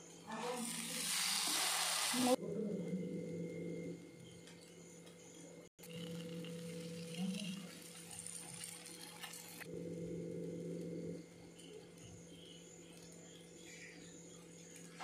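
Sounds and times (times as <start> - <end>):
bread sizzling in a pan: 0.4 - 2.4, 5.8 - 9.7
steady low hum: 2.3 - 15.0.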